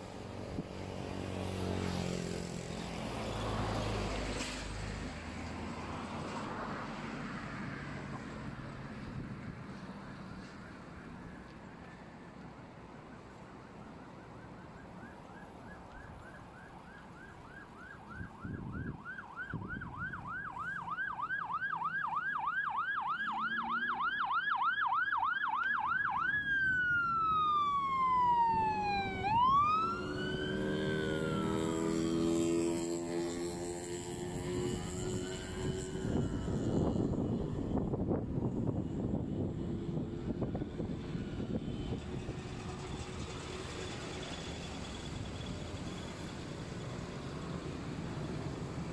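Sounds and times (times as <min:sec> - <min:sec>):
road traffic noise: 0:00.0 - 0:48.9
electronic siren yelp and wail: 0:13.1 - 0:32.2.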